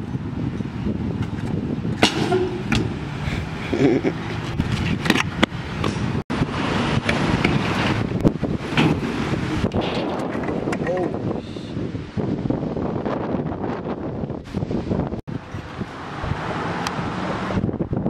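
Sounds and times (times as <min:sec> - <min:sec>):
scooter wheels rolling on concrete: 0:00.0 - 0:11.1
wind on microphone: 0:00.0 - 0:18.0
scooter clacking on metal ramps: 0:01.3 - 0:03.1, 0:08.7 - 0:11.0.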